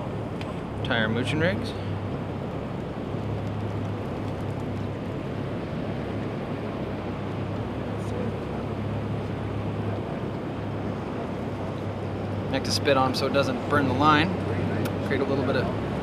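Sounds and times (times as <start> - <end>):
boat motor humming: 0.0 - 16.0
water: 0.0 - 16.0
wind: 0.0 - 16.0.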